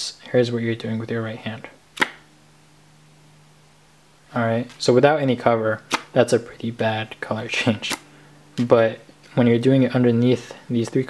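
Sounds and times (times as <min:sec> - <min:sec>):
faint low hum: 0:00.0 - 0:11.0
playing card snapping: 0:02.0 - 0:02.3, 0:05.9 - 0:06.2, 0:07.8 - 0:08.1.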